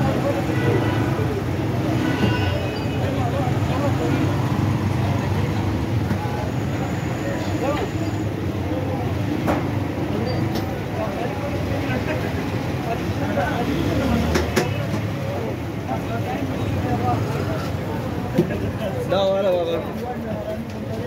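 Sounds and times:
low hum of traffic: 0:00.0 - 0:21.0
people's voices: 0:00.0 - 0:21.0.

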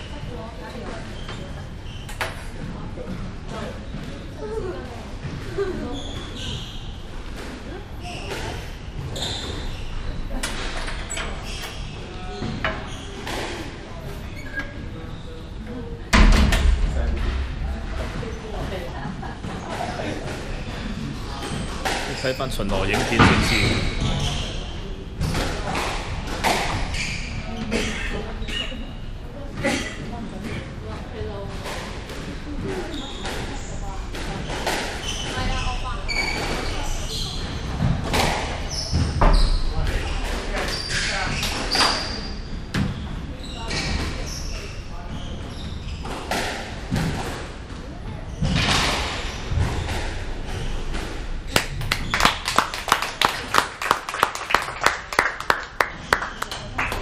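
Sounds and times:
spectators clapping: 0:51.5 - 0:57.0.

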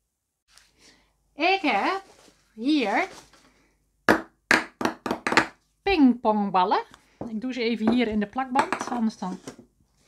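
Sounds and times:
ping-pong balls bouncing on table: 0:04.1 - 0:05.6, 0:08.6 - 0:09.0.

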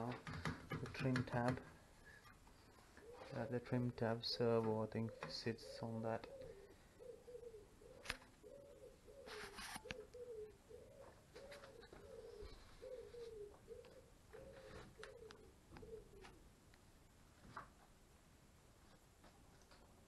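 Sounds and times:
pigeon cooing: 0:02.8 - 0:03.6, 0:05.0 - 0:16.5
brief rustle: 0:09.3 - 0:10.0.

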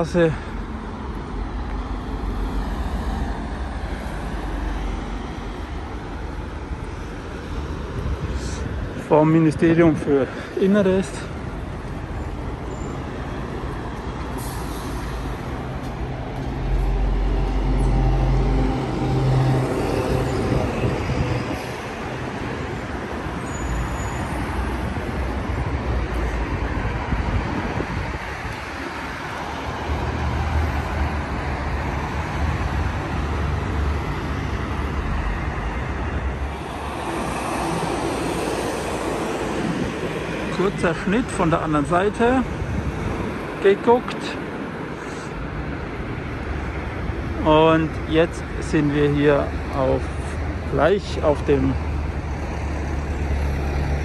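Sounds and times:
heavy vehicles rumbling past: 0:00.0 - 0:54.0
road traffic: 0:00.0 - 0:54.0.

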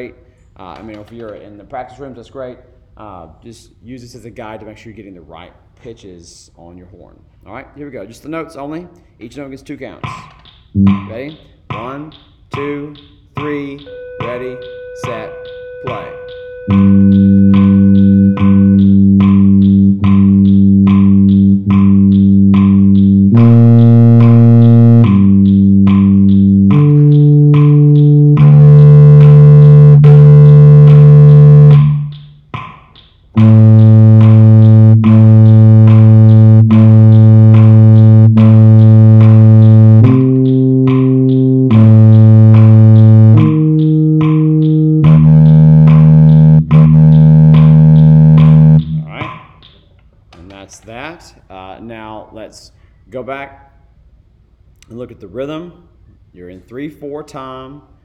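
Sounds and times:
metronome clicks: 0:10.0 - 0:49.8
low brass sustained notes: 0:10.8 - 0:11.3, 0:13.9 - 0:32.1, 0:33.4 - 0:49.2.

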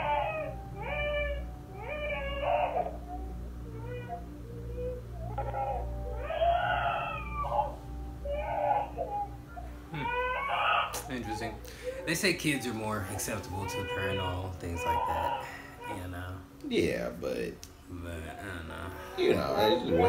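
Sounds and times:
steady low hum: 0:00.0 - 0:20.0
girl crying: 0:19.1 - 0:20.0.

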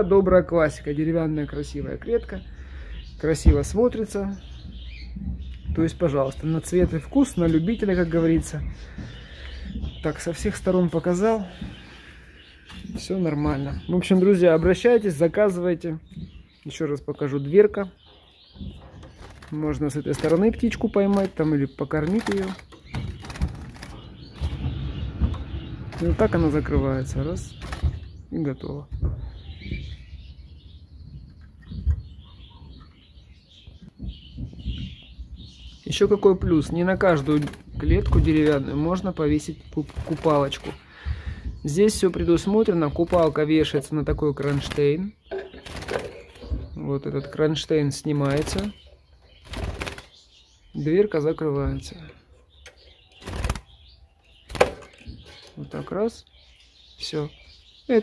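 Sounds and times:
wire rattling against wood: 0:18.5 - 0:28.3, 0:36.4 - 0:47.4, 0:51.7 - 0:55.8.

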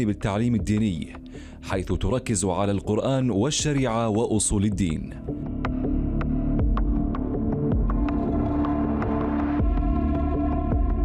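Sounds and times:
low throbbing pulse: 0:04.8 - 0:11.0
sustained synthesizer chords: 0:05.2 - 0:11.0.

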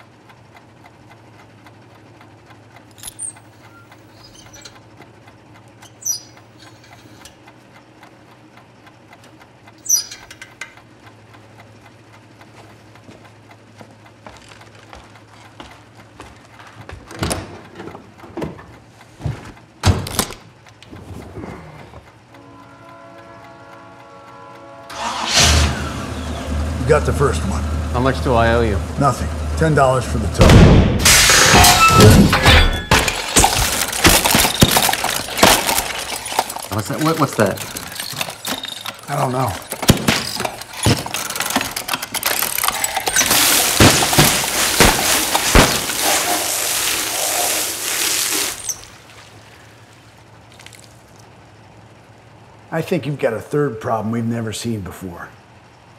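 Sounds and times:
held musical chord: 0:22.4 - 0:25.4
car engine starting and running: 0:24.9 - 0:30.8
clicks and knocks: 0:31.3 - 0:46.2
water spraying and splashing: 0:43.2 - 0:51.0.

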